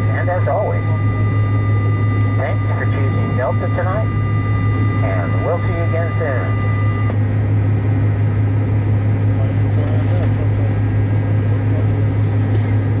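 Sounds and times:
aircraft cabin engine hum: 0.0s - 13.0s.

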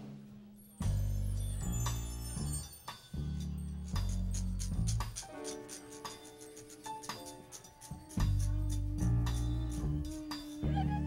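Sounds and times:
electric bass low notes: 8.3s - 11.0s.

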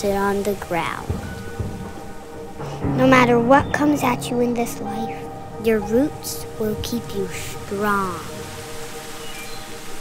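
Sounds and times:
rain: 0.0s - 10.0s
slow ambient music: 0.0s - 10.0s
thunder rumbling: 0.8s - 8.8s.

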